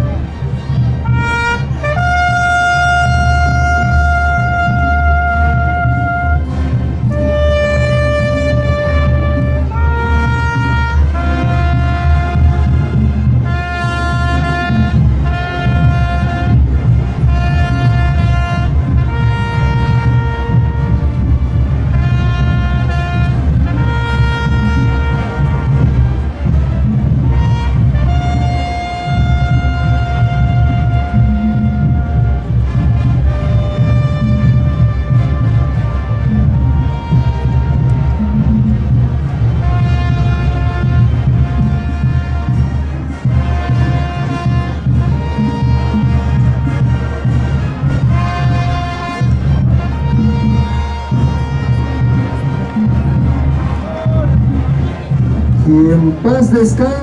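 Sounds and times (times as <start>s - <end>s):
solo trumpet playing slow call: 1.0s - 54.2s.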